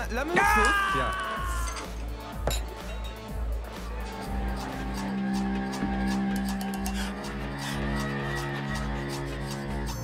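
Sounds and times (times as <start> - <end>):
glass set down on counter: 2.4 - 2.9.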